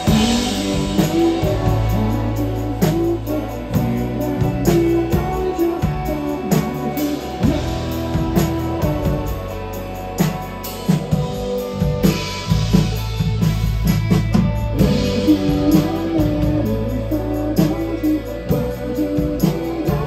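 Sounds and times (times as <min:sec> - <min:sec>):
drum kit hits: 0:00.0 - 0:02.2
guitar: 0:00.0 - 0:20.0
low bass line: 0:00.0 - 0:20.0.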